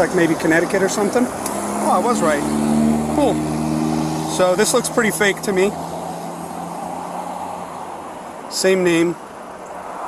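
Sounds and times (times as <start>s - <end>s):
road traffic hiss: 0.0s - 10.0s.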